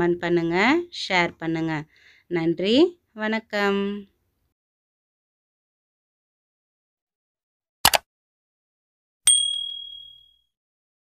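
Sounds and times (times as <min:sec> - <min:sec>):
click: 0:07.8 - 0:08.0
bright bell ding: 0:09.3 - 0:10.5.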